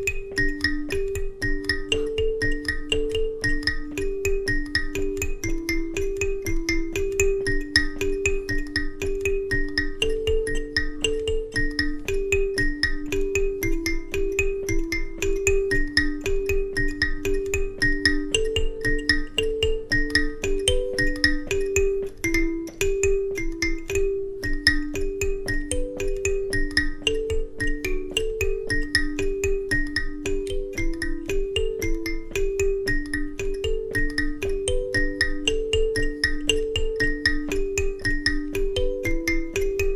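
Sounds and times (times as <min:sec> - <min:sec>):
kalimbas plucked: 0:00.0 - 0:39.9.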